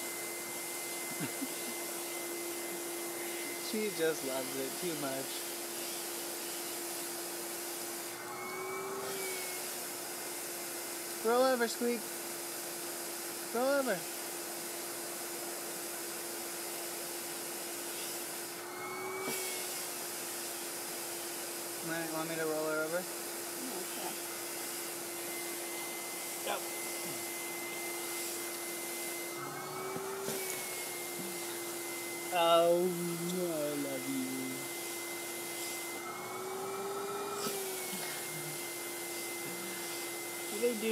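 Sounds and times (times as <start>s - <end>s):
vacuum cleaner running: 0.0s - 40.9s.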